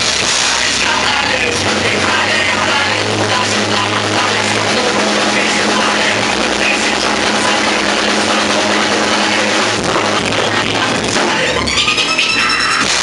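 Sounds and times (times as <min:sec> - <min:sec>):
drum kit rock groove: 0:00.0 - 0:13.0
recorded rock track: 0:00.0 - 0:13.0.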